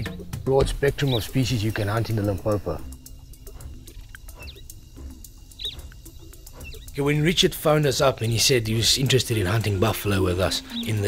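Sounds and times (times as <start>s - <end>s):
high animal chirps: 0.8s - 11.0s
low hum: 1.1s - 10.4s.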